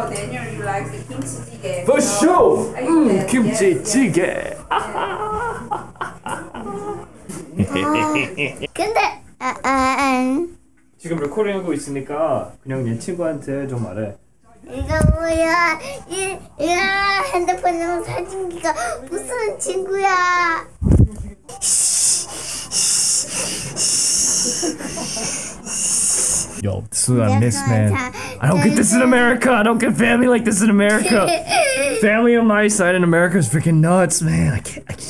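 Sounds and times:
hissing rubs against microphone: 25.6s - 26.6s.

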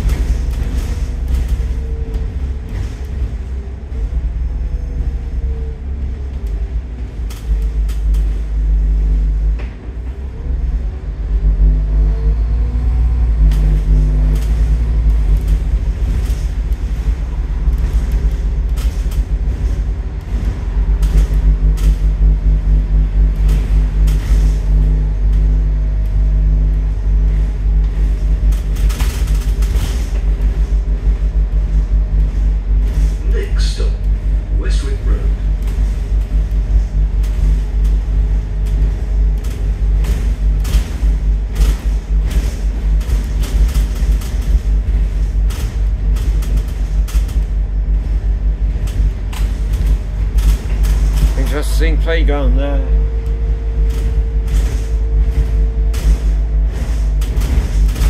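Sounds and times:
bus diesel engine drone: 0.0s - 58.0s
transmission whine: 0.0s - 58.0s.

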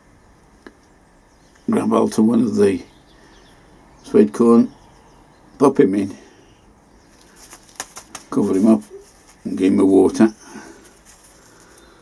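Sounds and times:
fingers handling compost: 7.2s - 12.0s.

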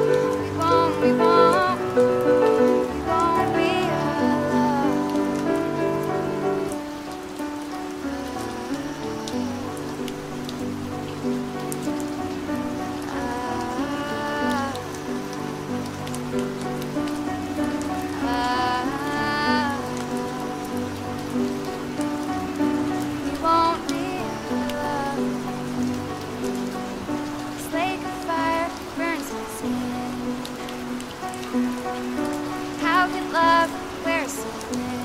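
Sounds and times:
person singing: 0.0s - 6.4s, 7.7s - 10.7s, 12.8s - 15.4s, 17.6s - 21.5s, 23.2s - 25.9s, 27.6s - 30.7s, 32.8s - 35.0s
rain on a hard surface: 0.0s - 35.0s.

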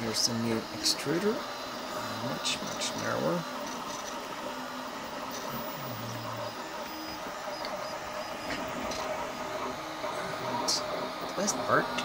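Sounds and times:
steady hum: 0.0s - 12.0s
stepper motors whining: 0.0s - 12.0s.

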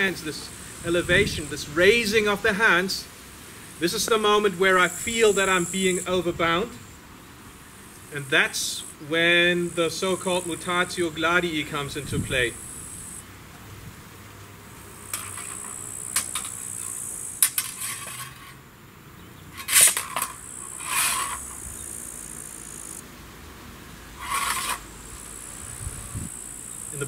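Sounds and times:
steady high buzz: 0.0s - 27.0s
swords clinking and scraping: 15.1s - 18.6s, 19.6s - 21.6s, 24.2s - 24.8s.

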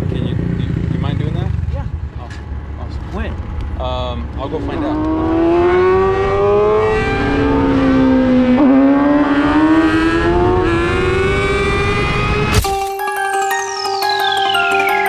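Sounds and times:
motorcycle engine accelerating: 0.0s - 2.2s, 3.0s - 12.6s
music: 12.6s - 15.0s.

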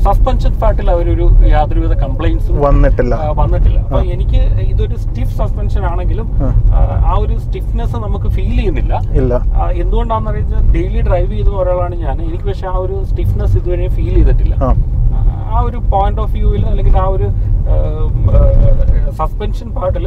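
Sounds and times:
man talking: 0.0s - 20.0s
road and engine rumble: 0.0s - 20.0s.

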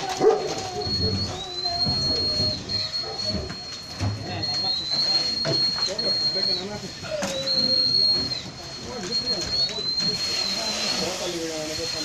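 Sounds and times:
people's voices: 0.0s - 12.0s
high thin whistling tone: 0.7s - 12.0s.

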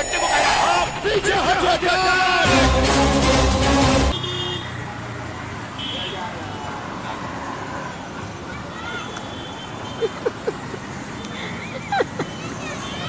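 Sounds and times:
street traffic noise: 0.0s - 13.0s.

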